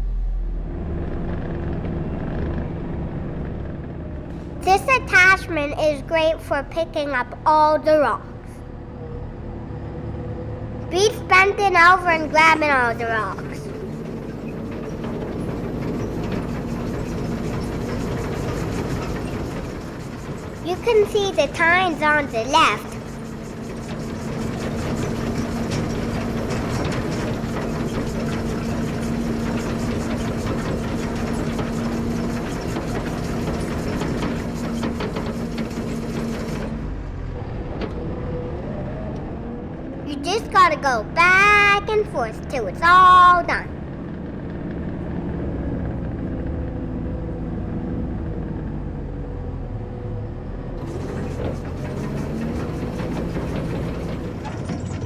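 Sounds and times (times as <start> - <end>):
skid steer engine running: 0.0 - 55.0
power rake clatter: 12.4 - 37.0, 50.8 - 55.0
hydraulic whine: 22.8 - 40.1, 50.1 - 55.0.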